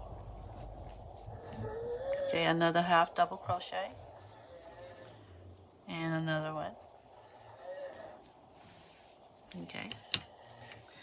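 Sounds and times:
yarn rustling over crochet hook: 0:00.0 - 0:05.2, 0:05.8 - 0:09.9.

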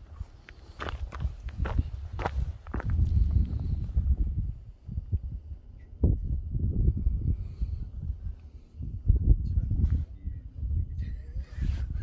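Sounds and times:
footsteps on gravel: 0:00.1 - 0:03.6.

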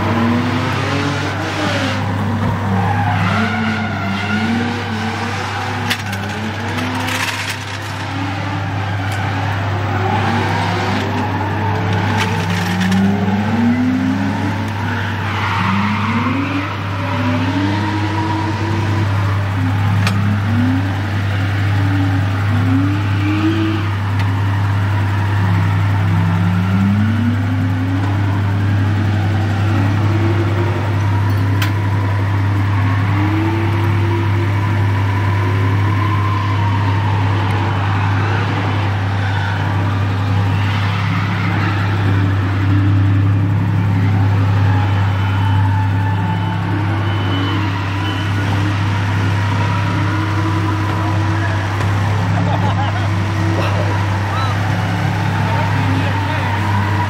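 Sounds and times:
car engines revving: 0:00.0 - 0:57.0
steady engine drone: 0:00.0 - 0:57.0.

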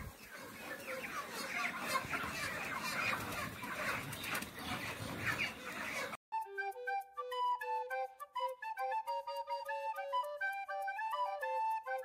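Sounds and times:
flock of chickens clucking: 0:00.0 - 0:06.2
flute-like melody: 0:06.3 - 0:12.0.

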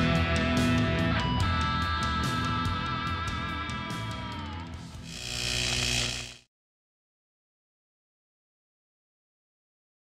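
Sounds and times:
hissing buzz: 0:05.1 - 0:06.5.

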